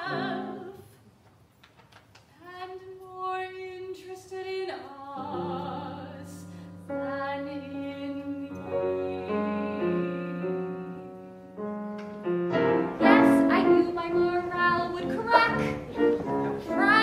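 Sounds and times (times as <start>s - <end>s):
soprano singing with vibrato: 0.0s - 1.0s, 2.4s - 11.2s, 12.9s - 17.0s
piano playing sustained chords: 5.2s - 17.0s.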